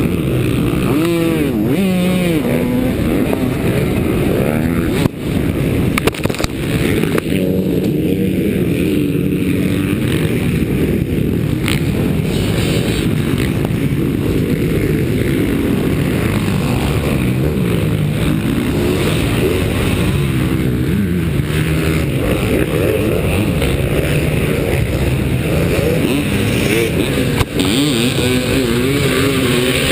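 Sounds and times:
motocross bike engines revving: 0.0s - 29.9s
wind noise on camera: 0.0s - 29.9s.

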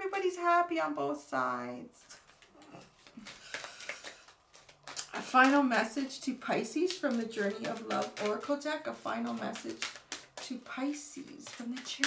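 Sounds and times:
cards rustling and tapping: 2.0s - 12.0s.

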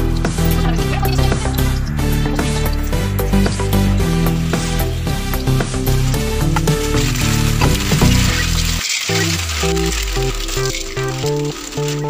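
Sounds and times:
background music: 0.0s - 12.0s
food sizzling in a pan: 3.6s - 12.0s.

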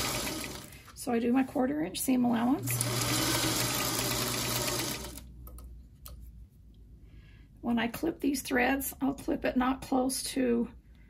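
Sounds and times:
sewing machine running: 0.0s - 0.8s, 2.6s - 5.3s.

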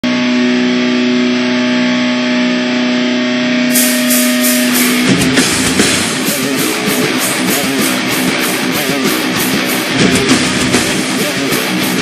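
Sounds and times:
distorted electric guitar drone: 0.0s - 12.0s
live heavy metal song: 0.1s - 12.0s.

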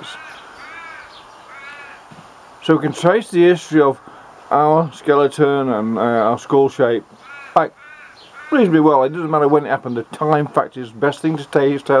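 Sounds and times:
bird calling: 0.0s - 4.2s, 7.0s - 10.6s.

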